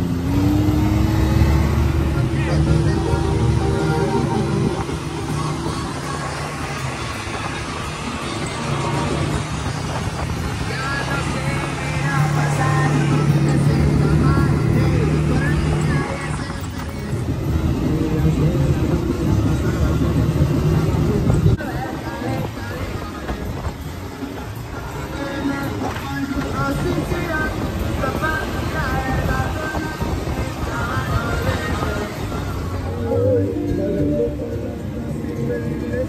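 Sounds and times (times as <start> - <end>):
background music: 0.0 - 36.0
off-road vehicle engine running: 0.0 - 36.0.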